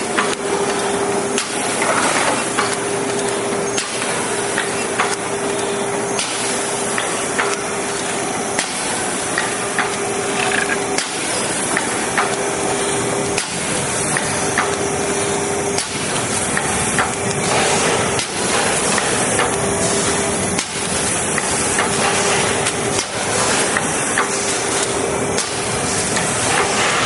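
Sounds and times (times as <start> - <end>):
sharp machine clicks and knocks: 0.0 - 12.5, 13.3 - 15.0, 15.6 - 27.0
machine hiss: 0.0 - 27.0
steady machine hum: 0.0 - 27.0.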